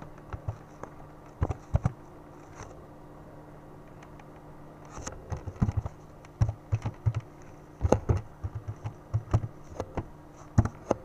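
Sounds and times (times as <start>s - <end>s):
typing on computer keyboard: 0.3s - 0.6s, 1.4s - 2.0s, 5.3s - 9.9s.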